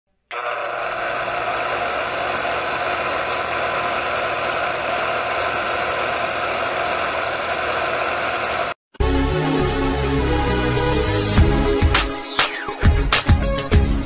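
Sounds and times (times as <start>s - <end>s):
film projector whirring and rattling: 0.3s - 8.8s.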